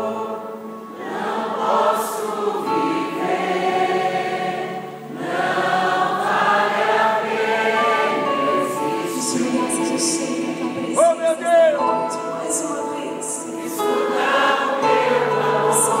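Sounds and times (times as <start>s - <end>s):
choir singing: 0.0s - 16.0s
gospel music: 0.0s - 16.0s
woman singing: 8.4s - 11.0s, 11.9s - 16.0s.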